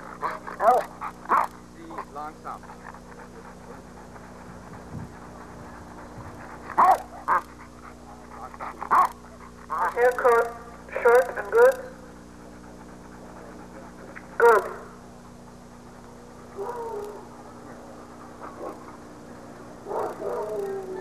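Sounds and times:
dog barking: 0:00.2 - 0:01.5, 0:06.7 - 0:07.5, 0:08.9 - 0:12.0, 0:14.4 - 0:15.0, 0:16.6 - 0:17.3, 0:19.8 - 0:21.0.

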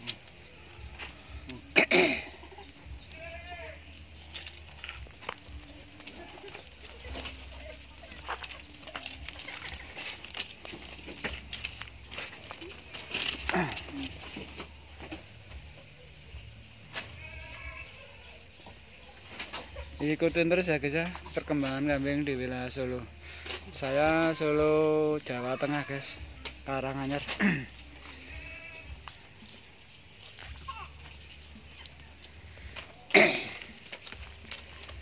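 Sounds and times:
dry leaves crackling underfoot: 0:00.0 - 0:35.0
goat bleating: 0:02.2 - 0:04.0, 0:17.0 - 0:18.4, 0:27.4 - 0:29.1.

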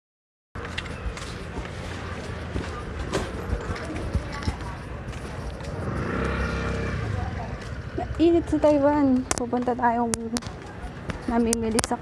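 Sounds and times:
street noise: 0:00.6 - 0:12.0
vehicle engine running: 0:02.0 - 0:10.4.

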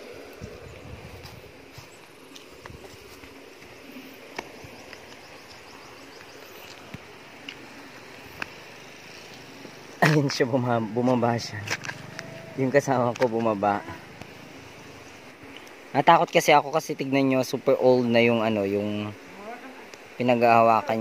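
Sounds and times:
steady low hiss: 0:00.0 - 0:21.0.

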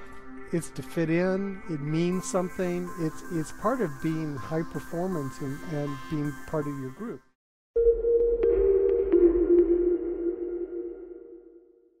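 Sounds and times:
held synth tone: 0:07.8 - 0:11.8.

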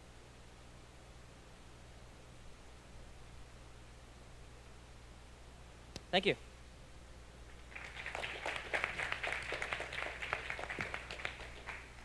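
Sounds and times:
audience applauding: 0:07.7 - 0:12.0.

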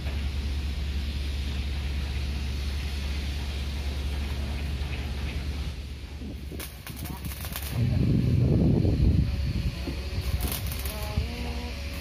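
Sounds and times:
low mechanical hum with hiss: 0:00.0 - 0:12.0
electric arc welding crackles: 0:01.7 - 0:12.0.

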